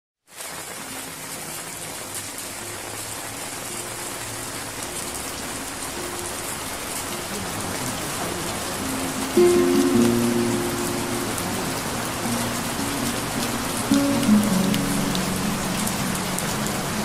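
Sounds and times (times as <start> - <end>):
rain-like hiss: 0.2 - 17.0.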